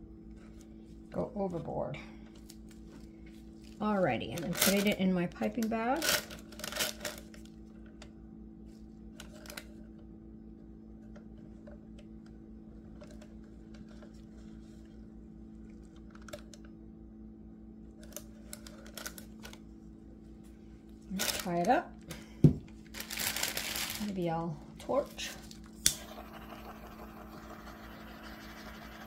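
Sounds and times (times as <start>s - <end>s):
low electrical hum: 0.0s - 29.0s.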